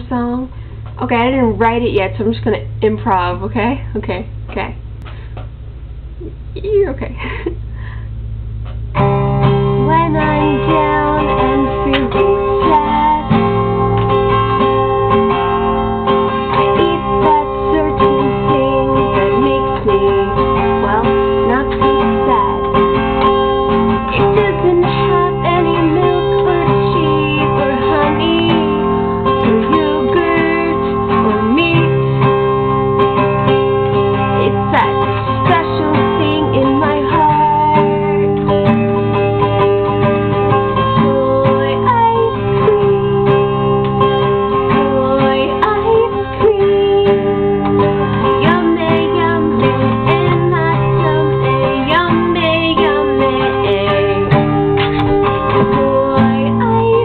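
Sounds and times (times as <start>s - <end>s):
acoustic guitar strumming: 0.0s - 57.0s
woman singing: 9.7s - 13.7s, 16.2s - 32.4s, 34.2s - 38.7s, 40.2s - 57.0s.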